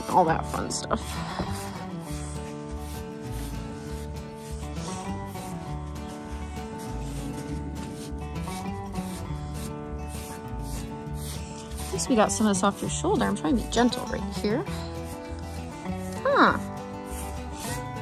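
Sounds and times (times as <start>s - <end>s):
curry comb scratching coat: 0.0s - 18.0s.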